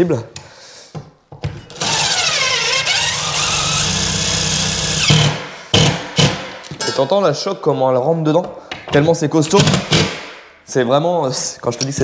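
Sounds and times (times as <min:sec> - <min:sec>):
impact driver whining: 0:01.7 - 0:06.5.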